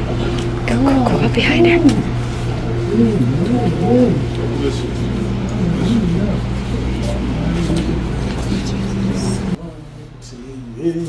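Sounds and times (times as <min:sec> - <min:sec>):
low steady hum: 0:00.0 - 0:11.0
people's voices: 0:00.0 - 0:11.0.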